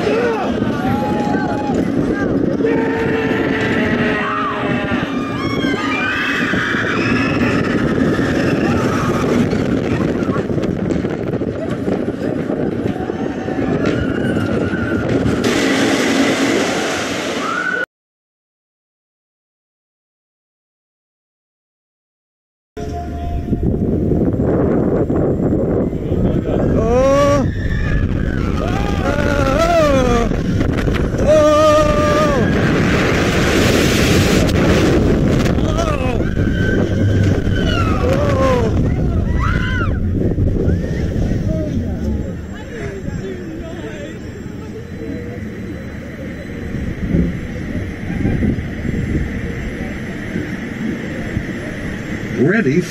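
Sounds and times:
riders whooping: 0.0s - 10.6s, 11.6s - 17.8s, 25.8s - 52.2s
roller coaster rumbling on track: 0.0s - 17.8s, 22.8s - 52.9s
rush of wind: 0.0s - 17.8s, 22.8s - 52.9s
long held scream: 35.8s - 40.0s.

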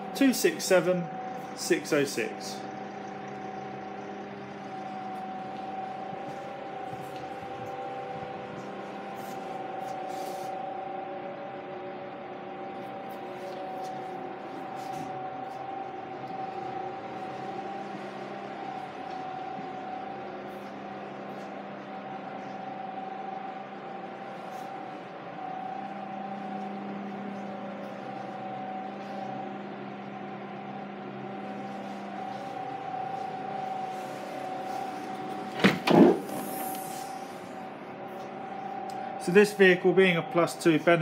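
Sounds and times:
steady hum with faint tone: 0.0s - 41.0s.

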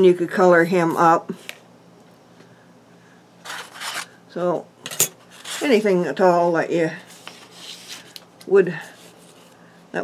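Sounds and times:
dry rubbing rustle of cardstock: 7.0s - 8.2s.

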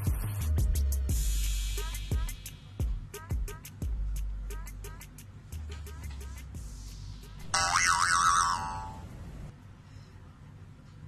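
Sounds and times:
cartoon boing sound effect: 7.5s - 9.0s.

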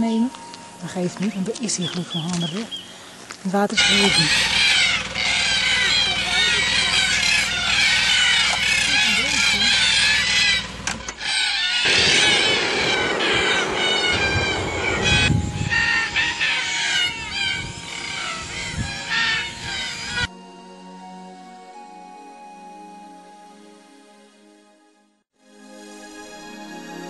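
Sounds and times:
flock of birds chattering: 0.1s - 20.3s
cockatoos calling: 1.7s - 20.3s
low rumble: 11.9s - 19.0s.

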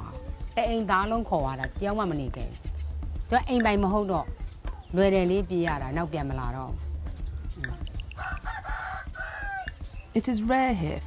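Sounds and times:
rooster crowing: 8.2s - 9.7s.

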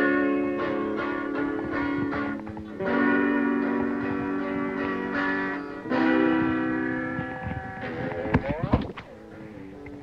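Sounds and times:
guitar chord ringing: 0.0s - 8.4s.

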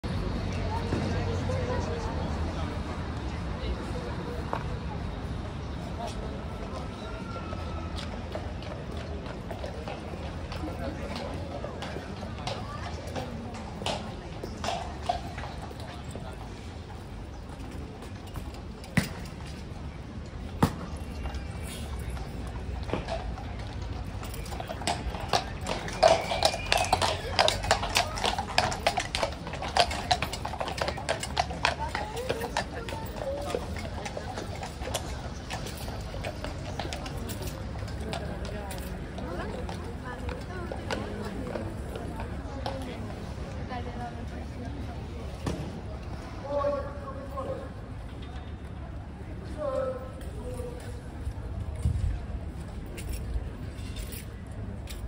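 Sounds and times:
crowd chatter: 0.0s - 55.0s
horse hooves on stone paving: 7.6s - 48.8s, 49.5s - 55.0s.

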